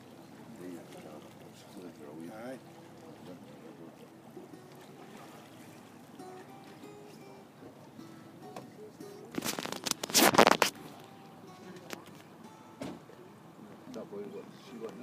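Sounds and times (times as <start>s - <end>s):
acoustic guitar picked notes: 4.1s - 15.0s.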